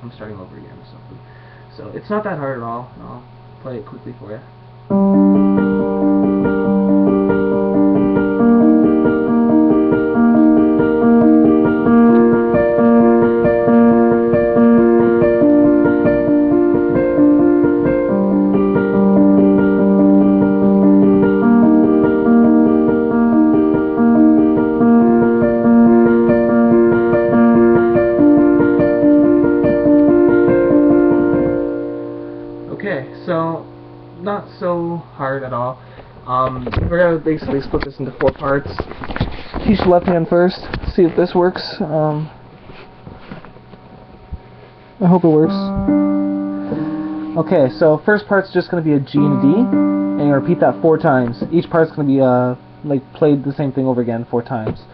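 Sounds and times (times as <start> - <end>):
piano broken-chord figure: 1.2 - 40.6, 43.6 - 54.9
person speaking: 32.7 - 38.9, 45.0 - 46.0, 46.7 - 54.9.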